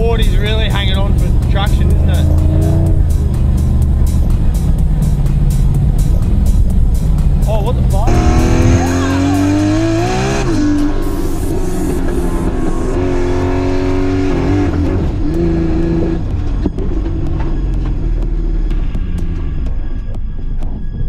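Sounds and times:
sliding melody: 0.0 - 20.4
car engine drone: 0.0 - 21.0
music: 0.0 - 21.0.

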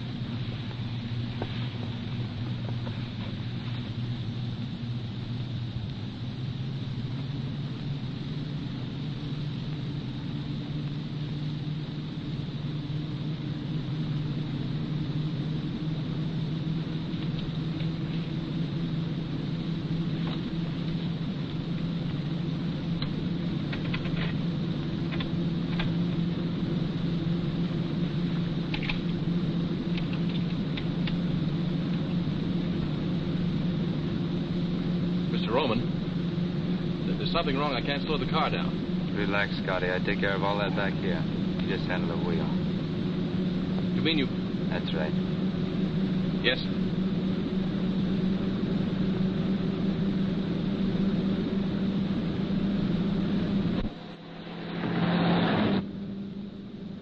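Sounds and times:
car engine accelerating: 48.0 - 56.4.

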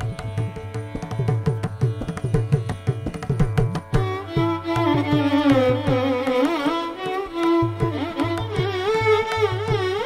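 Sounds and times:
violin playing melody: 0.0 - 10.0.

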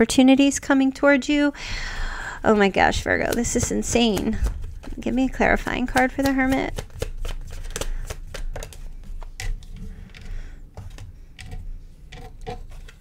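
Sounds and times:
cards being shuffled: 3.0 - 11.0.

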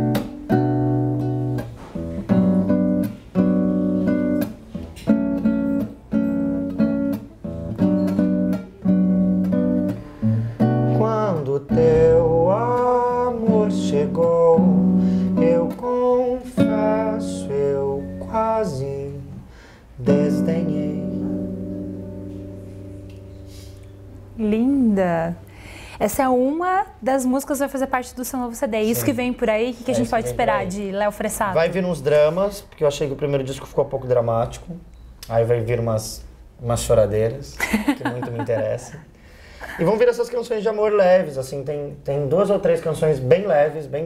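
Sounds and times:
acoustic guitar strumming: 0.0 - 25.2
person singing: 10.9 - 19.4, 20.0 - 21.4.

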